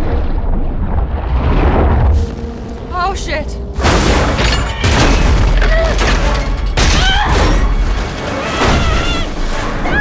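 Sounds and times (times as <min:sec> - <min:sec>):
low rumbling score: 0:00.0 - 0:04.3.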